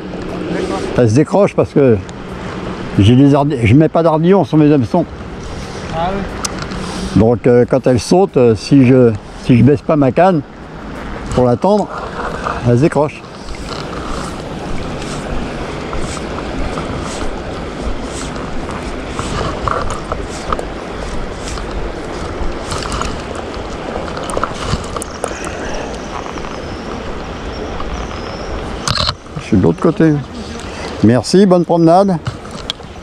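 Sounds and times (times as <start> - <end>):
river water rushing: 0.0 - 33.0
wind on microphone: 10.4 - 31.2
fly line rustling: 10.8 - 33.0.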